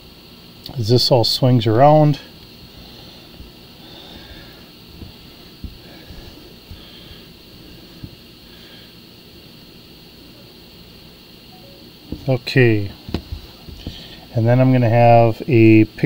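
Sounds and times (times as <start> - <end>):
room hiss: 0.0 - 16.0.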